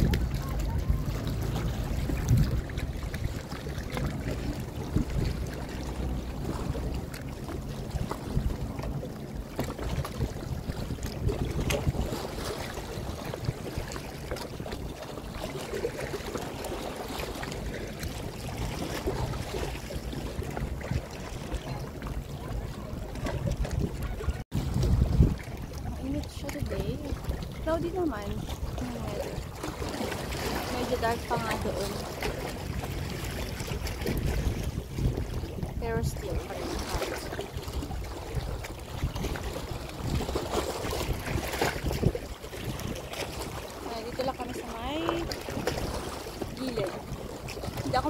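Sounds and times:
lake water lapping: 0.0s - 48.0s
wind buffeting microphone: 0.0s - 48.0s.

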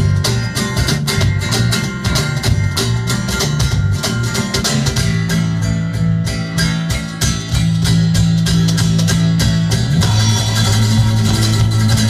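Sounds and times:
electric bass low notes: 0.0s - 12.0s
strummed acoustic guitar: 0.0s - 12.0s.

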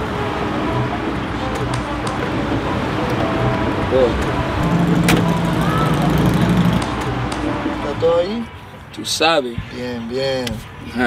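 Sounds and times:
car engine humming: 0.0s - 8.9s
street noise: 0.0s - 11.0s
faint voices: 3.9s - 8.6s.

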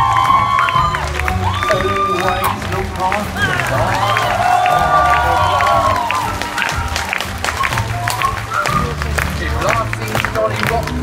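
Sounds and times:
audience applauding: 0.0s - 11.0s
music with steady bass line: 0.0s - 11.0s.

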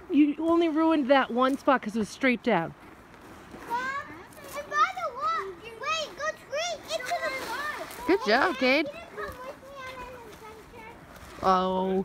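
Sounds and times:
children shouting: 3.7s - 10.1s.

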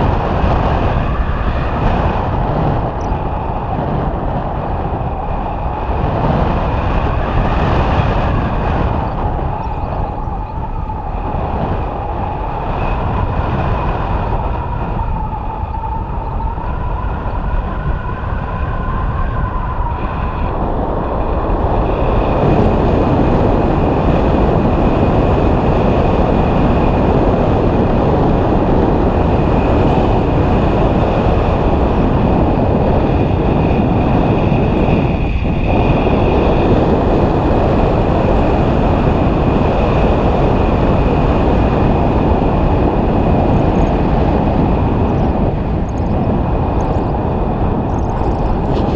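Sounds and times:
wind rushing over microphone: 0.0s - 48.9s
low wavering tone: 9.0s - 11.9s.

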